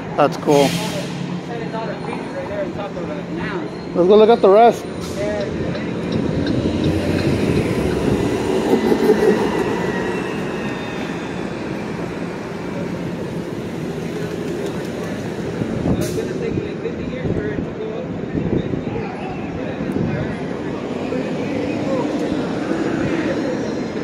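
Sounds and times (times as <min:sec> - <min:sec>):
bus driving past: 0:00.0 - 0:17.1.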